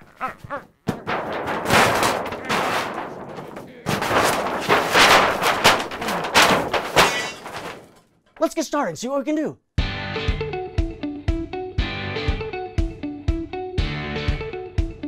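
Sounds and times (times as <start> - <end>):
paper ripping and crumpling: 0.9 - 7.6.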